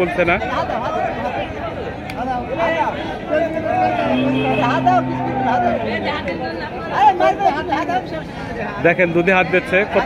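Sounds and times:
men chattering: 0:00.0 - 0:10.0.

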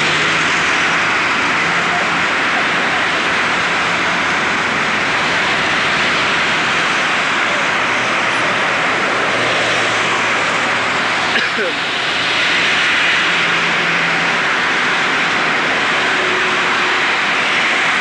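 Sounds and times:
street traffic passing: 0:00.0 - 0:18.0.

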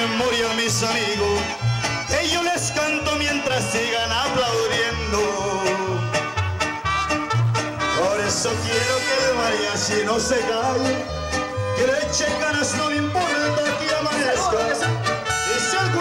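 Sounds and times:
mariachi band playing: 0:00.0 - 0:16.0
plucked bass notes: 0:00.0 - 0:16.0
strummed guitars: 0:00.0 - 0:16.0
violins playing melody: 0:05.9 - 0:16.0.

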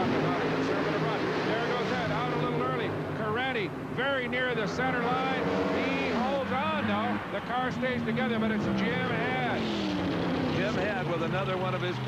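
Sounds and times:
commentator speaking: 0:00.0 - 0:09.7, 0:10.5 - 0:12.0
drag racing engines droning: 0:00.0 - 0:12.0.

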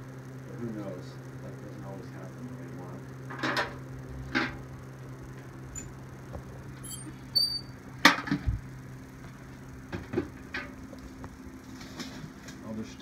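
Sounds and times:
low hum: 0:00.0 - 0:13.0
brief high squeak: 0:06.8 - 0:07.8.

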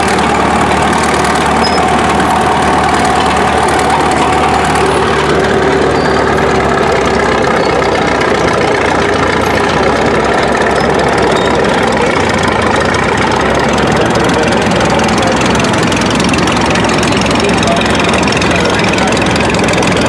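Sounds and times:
second tractor engine: 0:00.0 - 0:20.0
tractor engine running at low revs: 0:00.0 - 0:20.0.

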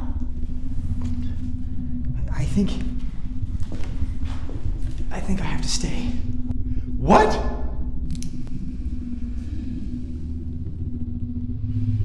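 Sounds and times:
low rumble with hum: 0:00.0 - 0:12.0.

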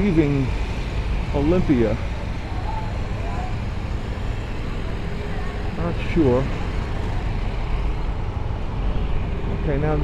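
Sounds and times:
surrounding traffic: 0:00.0 - 0:10.0.

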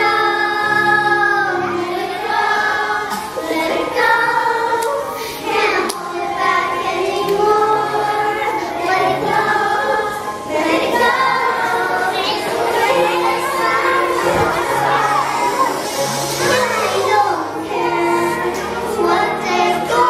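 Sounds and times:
girls singing pop song: 0:00.0 - 0:20.0.

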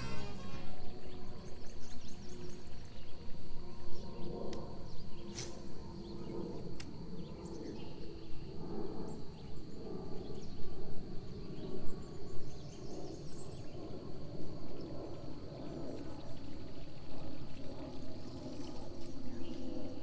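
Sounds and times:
high insect drone: 0:00.0 - 0:20.0
low rumbling noise: 0:00.0 - 0:20.0.

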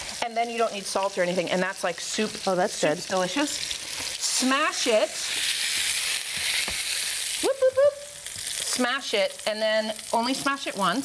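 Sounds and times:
beef sizzling in a skillet: 0:00.0 - 0:11.0.

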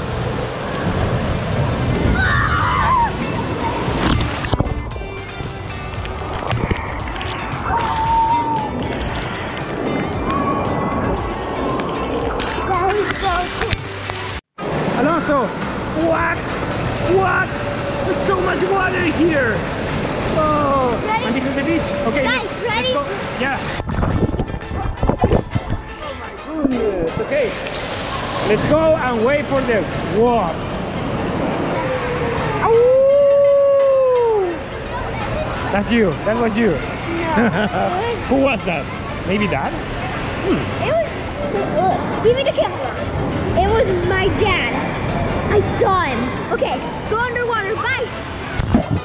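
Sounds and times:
crowd shouting and chattering: 0:00.0 - 0:49.0
music playing: 0:00.0 - 0:49.0.

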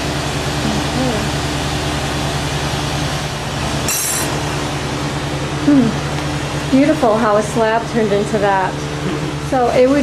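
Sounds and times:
ventilation hum: 0:00.0 - 0:10.0
glassy clink: 0:03.9 - 0:04.4.

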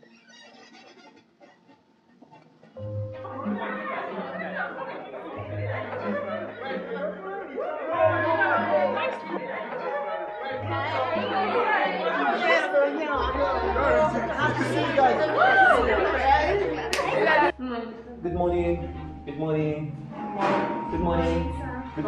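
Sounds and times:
crowd chattering: 0:02.2 - 0:22.0.

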